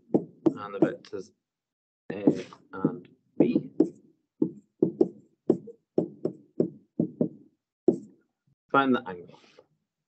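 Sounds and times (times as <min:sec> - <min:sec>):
stylus tapping on tablet: 0:00.0 - 0:01.1, 0:02.3 - 0:08.2.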